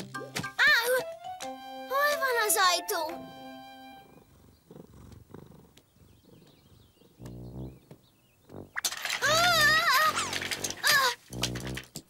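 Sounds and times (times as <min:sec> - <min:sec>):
cartoon cat purring: 0:04.1 - 0:07.8.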